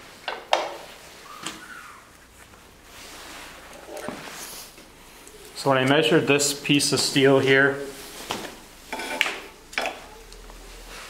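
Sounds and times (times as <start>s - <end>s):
faint rustle: 0.9s - 5.9s.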